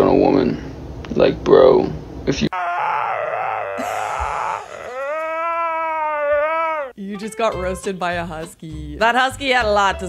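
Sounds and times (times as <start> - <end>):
husky howling: 2.5 - 7.0.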